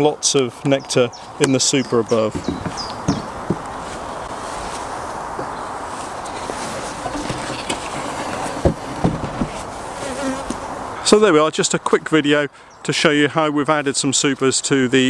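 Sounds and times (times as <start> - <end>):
honeybees buzzing: 1.8 - 11.0
light knocks: 2.3 - 3.8.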